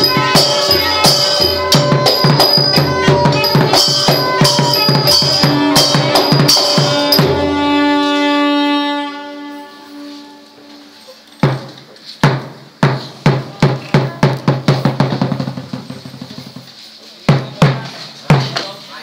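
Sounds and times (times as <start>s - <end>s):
held pitched tone: 0.0s - 11.2s
drum strokes: 0.0s - 18.7s.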